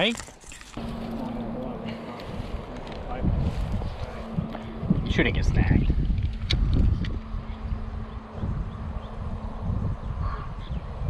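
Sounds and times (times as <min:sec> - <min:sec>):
steady low hum: 0:00.8 - 0:11.0
wind buffeting microphone: 0:00.9 - 0:11.0.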